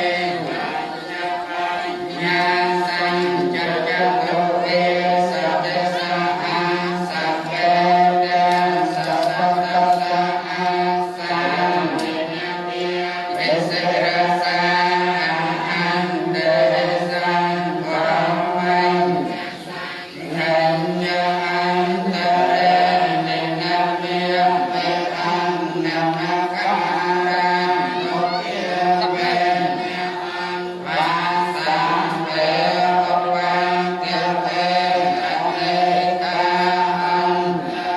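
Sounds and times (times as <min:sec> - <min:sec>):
voices chanting together: 0:00.0 - 0:37.9.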